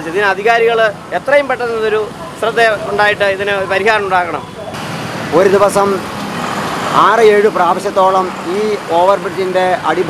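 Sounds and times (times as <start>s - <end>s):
man speaking: 0.0s - 6.1s, 6.9s - 10.0s
motorcycle traffic: 0.0s - 10.0s.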